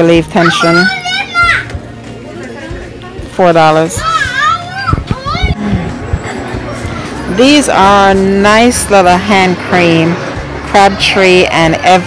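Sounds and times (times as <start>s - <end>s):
young child's high-pitched voice: 0.4s - 1.8s, 4.0s - 5.6s.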